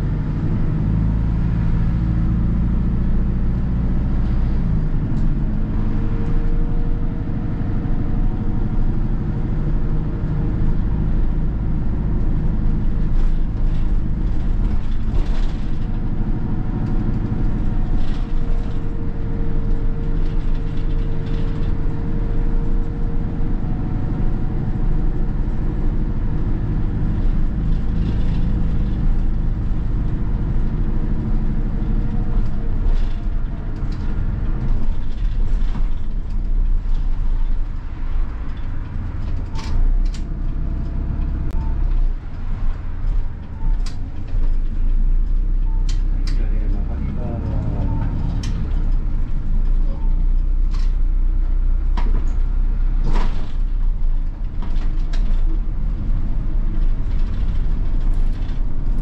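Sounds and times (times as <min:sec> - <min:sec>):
diesel bus engine running: 0:00.0 - 0:59.0
road noise: 0:00.0 - 0:59.0.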